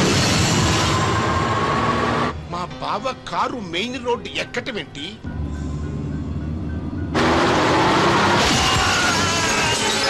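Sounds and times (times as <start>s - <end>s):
loud car crash: 0.0s - 1.7s, 7.2s - 10.0s
background music: 0.0s - 10.0s.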